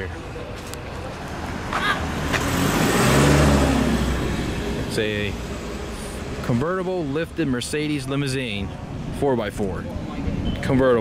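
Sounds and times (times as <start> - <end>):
vehicle driving past: 1.3 - 7.2.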